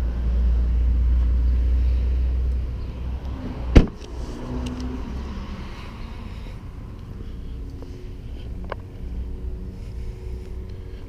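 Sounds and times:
car door shutting thud: 3.7 - 4.1.

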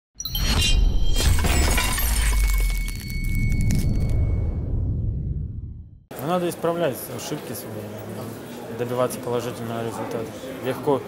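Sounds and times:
glass shattering: 0.2 - 4.4
deep low rumble: 3.1 - 6.1.

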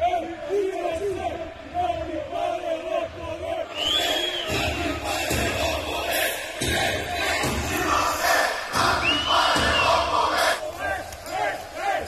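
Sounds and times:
crowd chanting over loudspeaker: 0.0 - 12.0.

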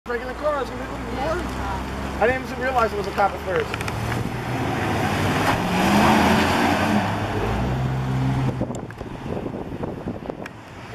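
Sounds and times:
truck engine driving past: 3.4 - 9.6.

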